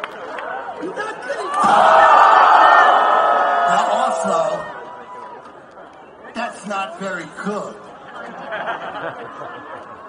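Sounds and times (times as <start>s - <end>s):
concert crowd yelling: 0.5s - 5.5s.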